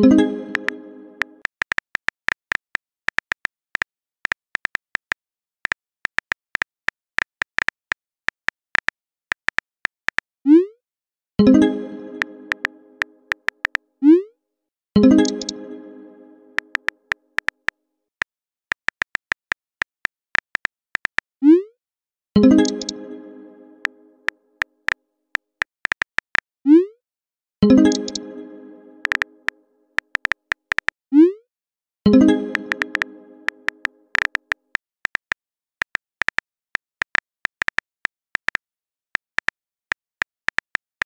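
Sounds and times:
incoming message chime: 0:00.0 - 0:01.3, 0:32.1 - 0:33.8
synthesized musical chord: 0:00.0 - 0:01.4, 0:11.4 - 0:13.4, 0:15.0 - 0:16.7, 0:22.4 - 0:24.3, 0:27.6 - 0:29.6, 0:32.1 - 0:34.0
simulated keyboard taps: 0:00.6 - 0:00.8, 0:01.4 - 0:10.3, 0:12.2 - 0:12.7, 0:13.3 - 0:13.8, 0:15.2 - 0:15.6, 0:16.6 - 0:21.3, 0:22.6 - 0:23.0, 0:25.6 - 0:26.4, 0:28.0 - 0:28.2, 0:29.0 - 0:30.9, 0:32.5 - 0:38.6, 0:39.4 - 0:41.0
keyboard taps: 0:16.6 - 0:17.7, 0:29.0 - 0:29.2, 0:30.0 - 0:30.9, 0:32.5 - 0:36.4.

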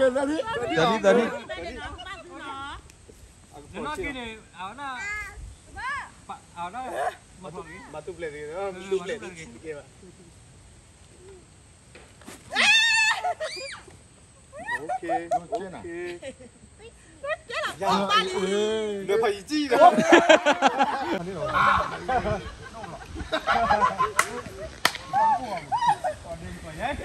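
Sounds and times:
voices: 0:00.0 - 0:27.0
person shrieking: 0:12.5 - 0:13.8
person falling cry: 0:12.5 - 0:13.9
people laughing: 0:12.6 - 0:27.0
sharp cracks: 0:24.1 - 0:25.2.

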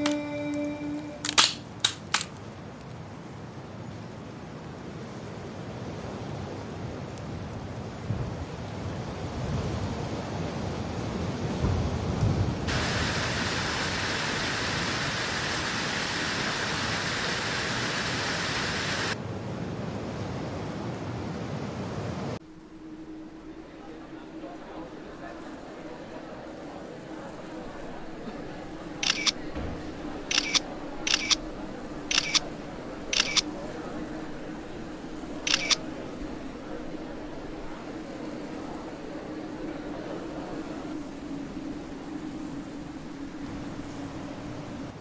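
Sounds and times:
low steady hum: 0:00.0 - 0:01.9, 0:22.4 - 0:45.0
waterfall rushing: 0:12.7 - 0:19.2
camera shutter clicks: 0:29.0 - 0:29.4, 0:30.3 - 0:31.4, 0:32.1 - 0:32.5, 0:33.1 - 0:33.5, 0:35.5 - 0:35.8.

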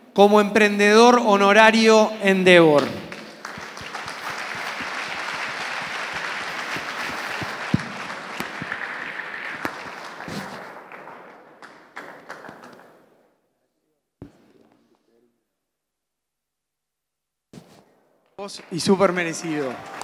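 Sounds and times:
audience applause: 0:03.1 - 0:13.0, 0:18.4 - 0:20.0.

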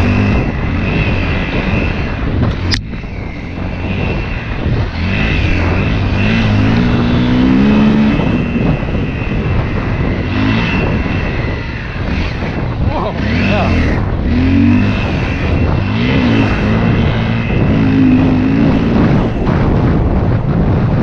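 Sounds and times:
dirt bike engine revving: 0:00.0 - 0:20.7.

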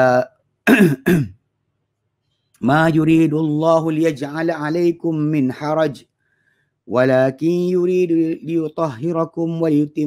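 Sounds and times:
man clearing his throat: 0:00.7 - 0:01.4.

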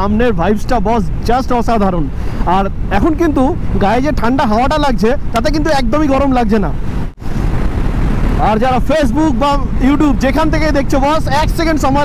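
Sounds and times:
man talking: 0:00.0 - 0:06.8, 0:08.4 - 0:12.0
wind and motorcycle riding noise: 0:00.0 - 0:12.0.

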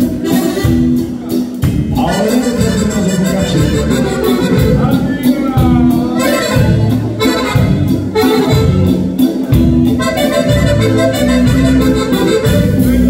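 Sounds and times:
accordions playing dance tune: 0:00.0 - 0:13.0.

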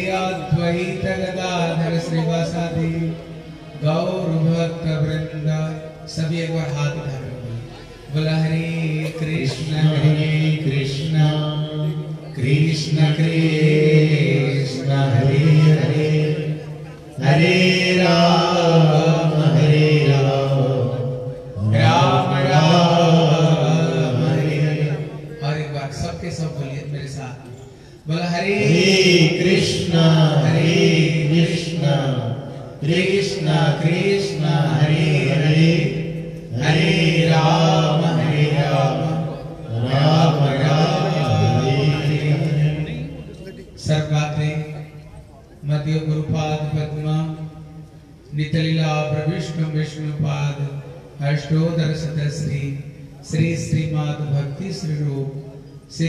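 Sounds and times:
voice chanting held phrases: 0:08.6 - 0:26.1, 0:28.3 - 0:32.2, 0:32.8 - 0:43.8.

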